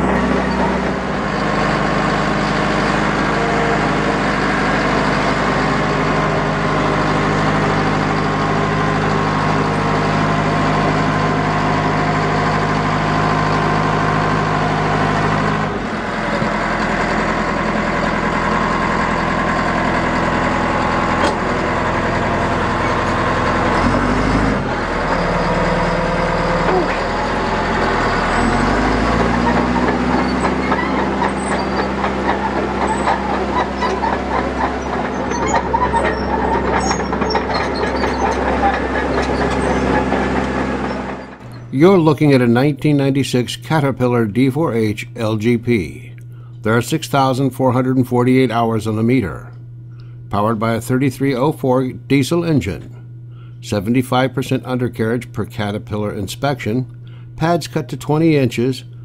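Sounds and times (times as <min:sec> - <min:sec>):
diesel engine running: 0:00.0 - 0:59.0.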